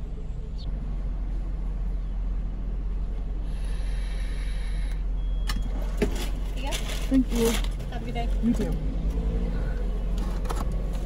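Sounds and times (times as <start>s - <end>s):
car idling rumble: 0.0s - 11.0s.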